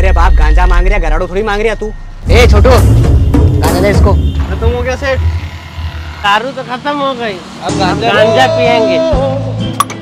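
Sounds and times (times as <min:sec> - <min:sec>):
men talking indistinctly: 0:00.0 - 0:05.4, 0:06.1 - 0:09.5.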